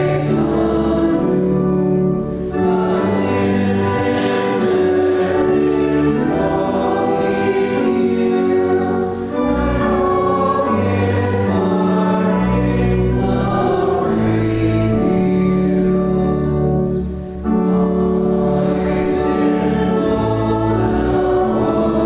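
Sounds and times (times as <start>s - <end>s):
congregation singing a hymn: 0.0s - 22.0s
keyboard accompaniment: 0.0s - 22.0s.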